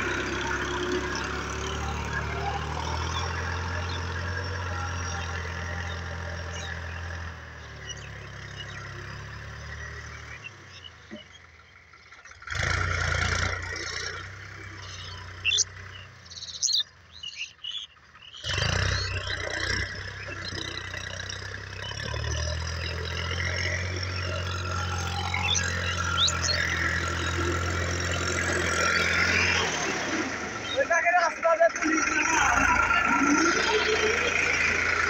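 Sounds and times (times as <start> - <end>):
tractor diesel engine droning: 0.0 - 35.0
faint bird chirps: 1.0 - 11.9, 14.6 - 29.4.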